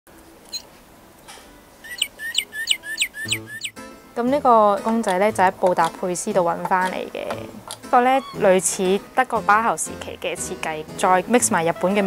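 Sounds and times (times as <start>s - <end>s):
recorded bird song from speaker: 1.8s - 3.8s.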